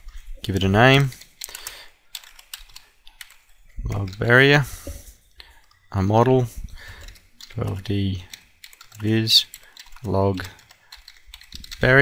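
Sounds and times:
keyboard keystrokes: 7.0s - 11.9s.

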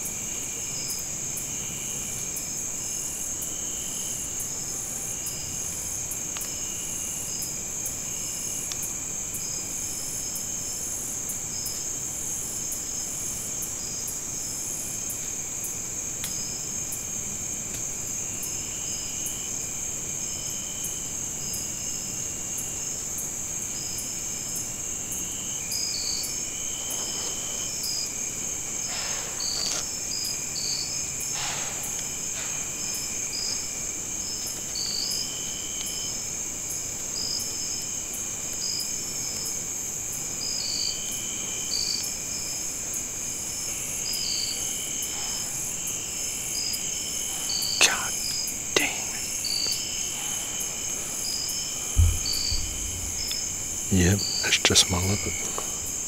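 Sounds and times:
crickets trilling: 0.0s - 56.0s
short cricket chirps: 0.0s - 56.0s.

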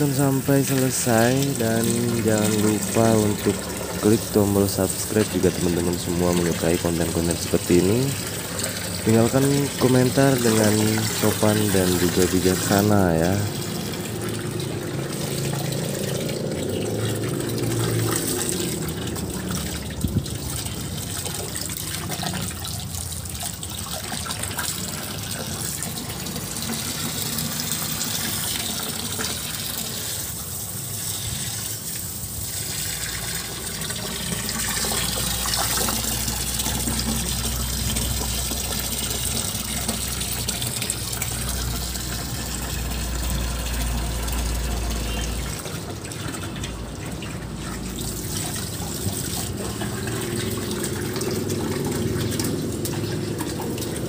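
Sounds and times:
water gushing into pond: 0.0s - 54.0s.

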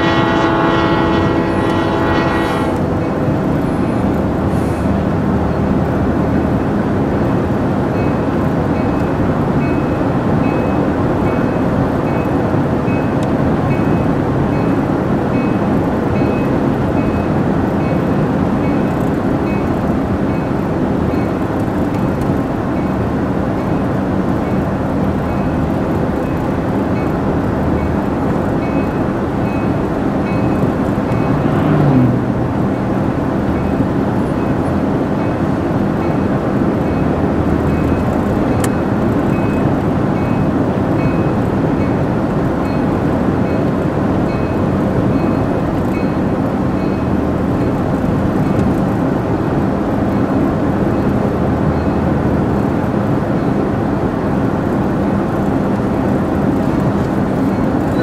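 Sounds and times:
road and tire noise in car: 0.0s - 58.0s.

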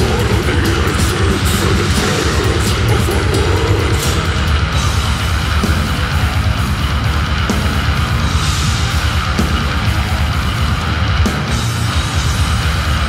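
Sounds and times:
distorted electric guitars: 0.0s - 13.0s
heavy drums: 0.0s - 13.0s.

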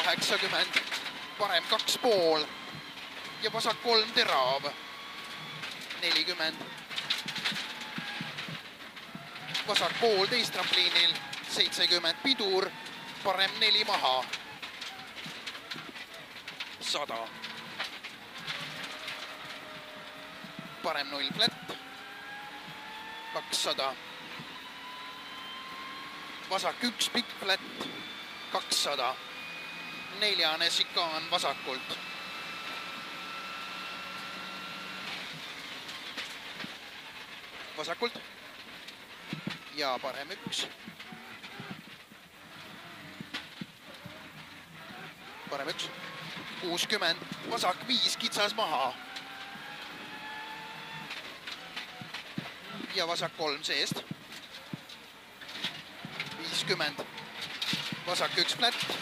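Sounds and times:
muffled car engine and road noise: 0.0s - 59.0s.

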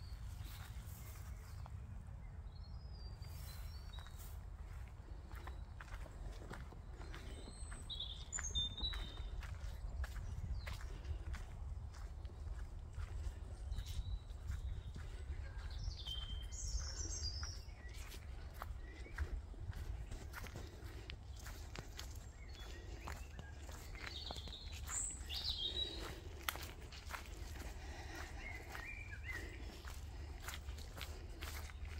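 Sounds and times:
footsteps on dirt path: 0.0s - 1.9s, 3.2s - 31.9s
bird chirps: 2.4s - 20.1s, 21.3s - 31.9s.

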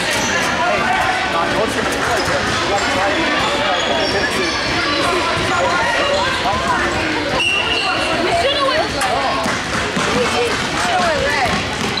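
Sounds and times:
hubbub of indistinct voices: 0.0s - 12.0s
basketball bouncing on wooden floor: 9.4s - 12.0s.

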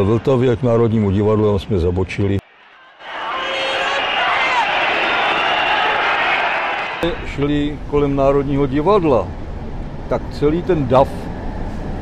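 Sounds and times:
crowd of many voices: 2.4s - 7.2s.

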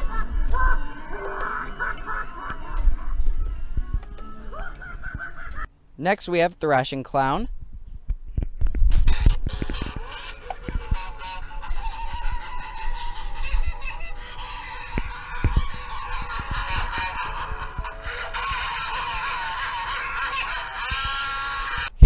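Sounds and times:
warbling clown sound effects: 0.0s - 5.6s, 9.1s - 22.0s
music from toy speaker: 9.5s - 21.8s.

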